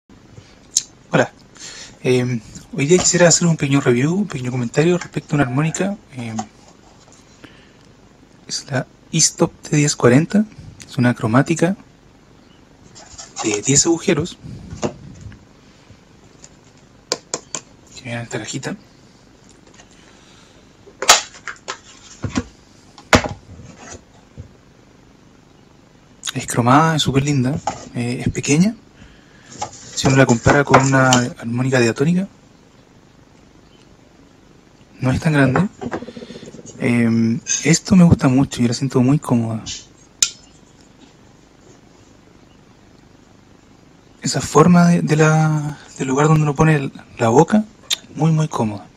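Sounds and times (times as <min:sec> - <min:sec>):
faint room hiss: 0:00.1 - 0:48.9.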